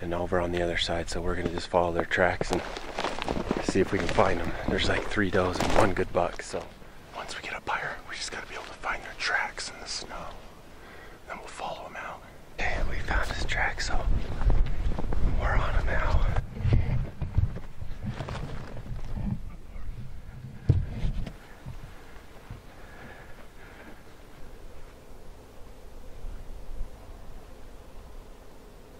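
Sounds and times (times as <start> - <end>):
man whispering: 0.0 - 10.5, 11.2 - 14.5, 15.2 - 17.0, 19.3 - 20.0
wind buffeting microphone: 2.4 - 6.4, 12.6 - 22.7.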